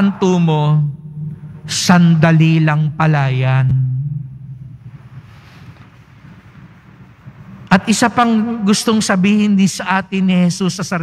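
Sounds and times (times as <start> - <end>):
man's amplified speech: 0.0 - 1.0, 1.6 - 4.0, 7.7 - 11.0
low background rumble and hiss: 0.0 - 11.0.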